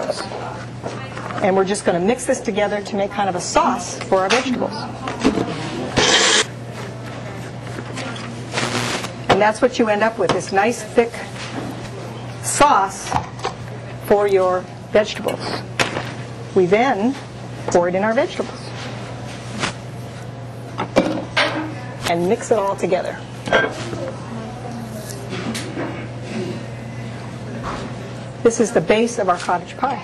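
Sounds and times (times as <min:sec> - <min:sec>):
steady low hum: 0:05.7 - 0:29.1
blender pulsing: 0:06.0 - 0:06.5, 0:08.6 - 0:09.1.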